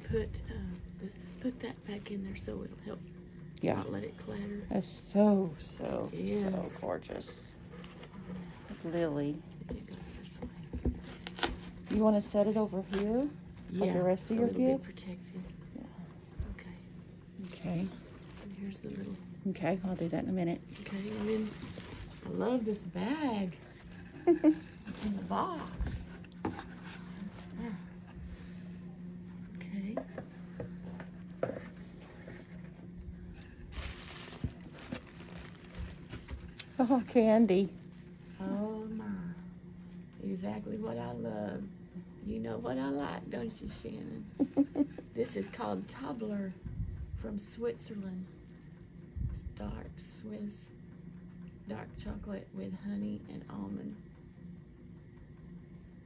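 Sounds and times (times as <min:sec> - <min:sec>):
low hum: 0:00.0 - 0:56.0
tissue paper and cardboard rustling: 0:05.7 - 0:14.7, 0:17.4 - 0:27.8, 0:33.4 - 0:38.7
tissue paper rustling: 0:17.4 - 0:22.8, 0:33.4 - 0:38.7.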